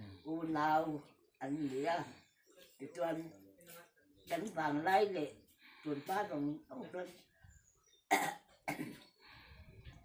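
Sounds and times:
person coughing: 8.1s - 9.1s.

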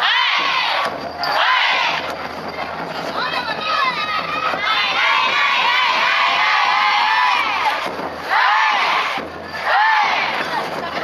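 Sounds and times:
group shouting a chant: 0.0s - 2.0s, 4.6s - 10.4s.

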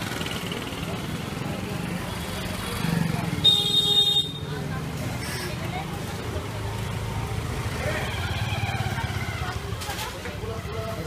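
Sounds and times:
low rumble of traffic: 0.0s - 11.0s
people's voices: 0.0s - 11.0s.

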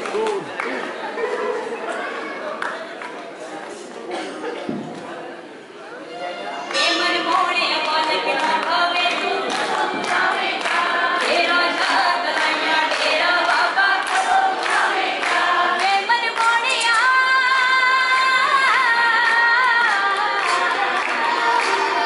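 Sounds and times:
group devotional singing: 6.9s - 22.0s.

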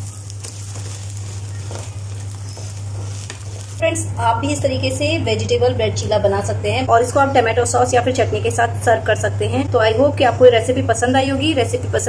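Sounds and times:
food sizzling in oil: 0.0s - 3.8s
wooden spatula scraping: 0.0s - 3.8s.

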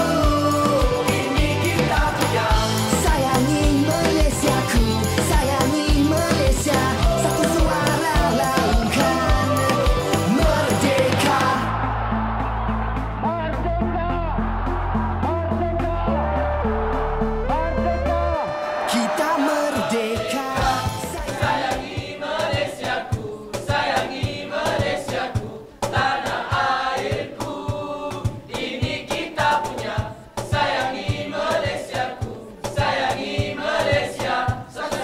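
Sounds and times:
pop song with group vocals: 0.0s - 12.1s, 15.4s - 35.0s.

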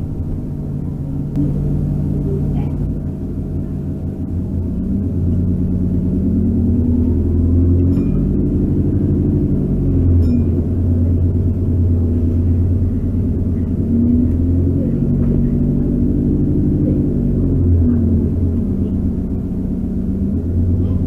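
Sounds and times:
bus engine accelerating: 0.0s - 21.0s.

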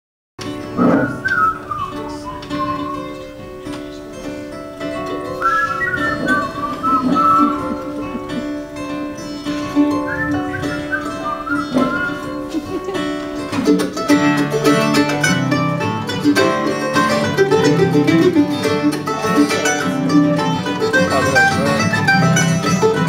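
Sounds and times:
acoustic guitars: 0.4s - 23.0s
keyboard holding notes: 0.6s - 23.0s
whistled melody: 1.0s - 3.4s, 5.4s - 7.9s, 9.8s - 12.4s.

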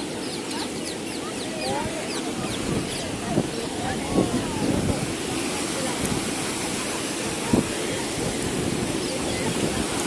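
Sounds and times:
birds chirping: 0.0s - 3.9s
people's voices: 0.0s - 10.0s
surf washing: 0.0s - 10.0s.

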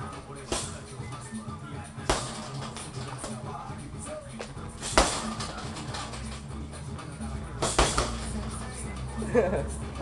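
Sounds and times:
background music: 0.0s - 10.0s
punch on heavy bag: 2.1s - 2.9s, 4.8s - 5.4s, 7.6s - 8.3s.

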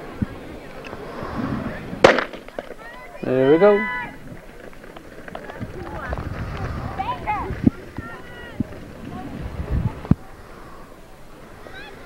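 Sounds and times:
starter's pistol crack: 2.0s - 2.7s.

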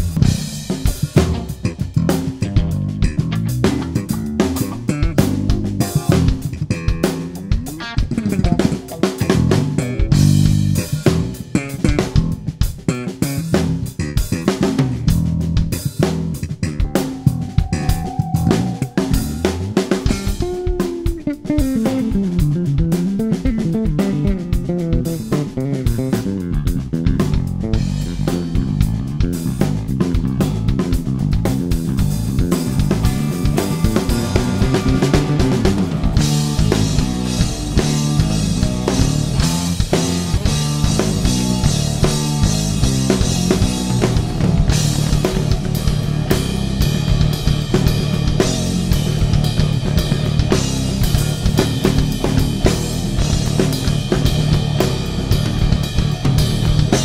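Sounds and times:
drum kit: 0.0s - 57.0s
electric bass line: 0.0s - 57.0s
electric guitar: 0.0s - 57.0s.

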